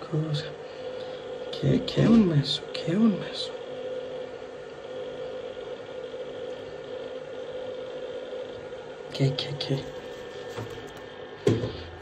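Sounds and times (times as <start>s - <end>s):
machine hum: 0.0s - 12.0s.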